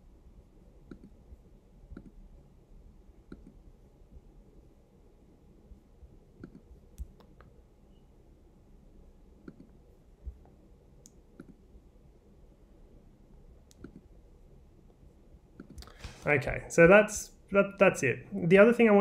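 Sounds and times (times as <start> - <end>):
faint mouse clicks: 0.9 - 1.2, 1.9 - 2.2, 3.3 - 3.6, 6.4 - 7.6, 9.4 - 11.6, 13.7 - 14.1, 15.6 - 16.1.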